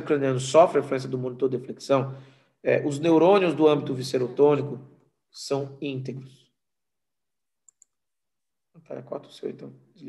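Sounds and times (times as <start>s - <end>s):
man talking: 0.0s - 2.1s, 2.7s - 4.8s, 5.4s - 6.3s, 8.8s - 9.8s.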